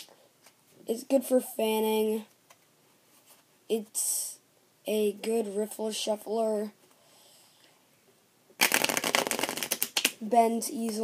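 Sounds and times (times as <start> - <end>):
playing cards riffle-shuffled: 8.6 - 10.2.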